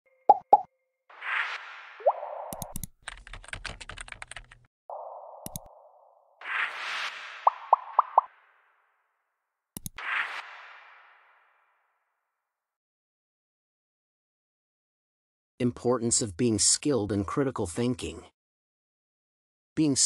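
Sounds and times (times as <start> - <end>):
keyboard typing clicks: 2.5 - 4.6, 5.4 - 5.7, 9.8 - 10.0.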